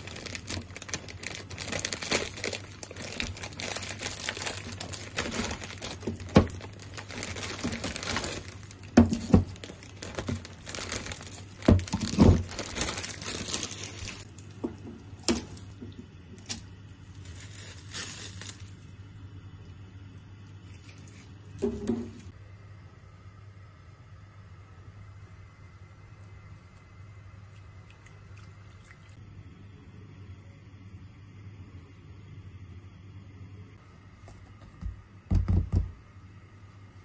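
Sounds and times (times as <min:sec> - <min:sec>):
plastic wrapping crinkling and tearing: 0:00.0 - 0:14.5, 0:16.4 - 0:18.9
frozen noodle blocks thumping down: 0:00.1 - 0:14.2, 0:34.6 - 0:36.0.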